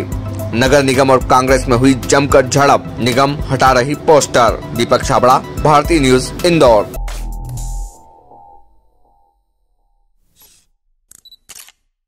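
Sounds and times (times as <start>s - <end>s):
camera shutter clicks: 10.4s - 11.9s.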